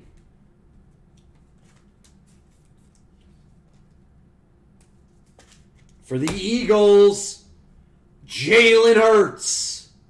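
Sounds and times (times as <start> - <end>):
low steady hum: 0.0 - 10.0
trading cards being flipped: 4.8 - 6.0.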